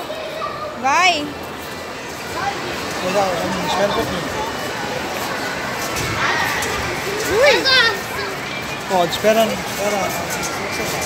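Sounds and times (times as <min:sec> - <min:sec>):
child's high-pitched voice: 0:00.0 - 0:00.8, 0:06.2 - 0:08.5
children's voices: 0:00.0 - 0:09.0
adult chatter: 0:00.0 - 0:11.0.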